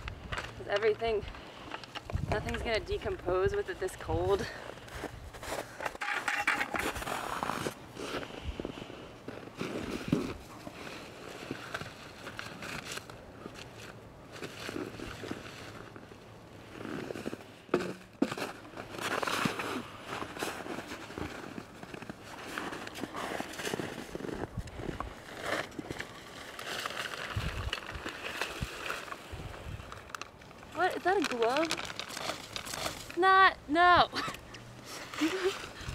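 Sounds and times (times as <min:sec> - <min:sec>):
footsteps in snow: 0:03.6 - 0:05.9, 0:06.8 - 0:28.8
plastic sheeting rustling: 0:18.2 - 0:33.3
food scraps emptied from bucket: 0:31.0 - 0:33.2.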